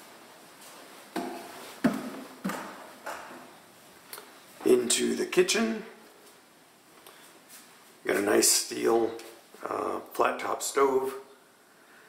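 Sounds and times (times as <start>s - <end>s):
bare footsteps on wooden steps: 1.1s - 2.8s.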